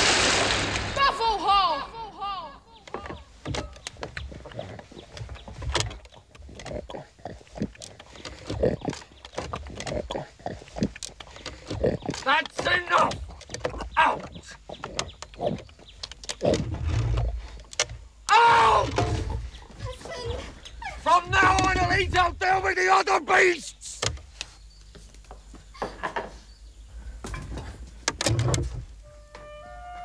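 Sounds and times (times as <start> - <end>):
person crying out long call: 1.0 - 3.2, 18.3 - 18.9
animal grunts and squeals: 2.9 - 12.4.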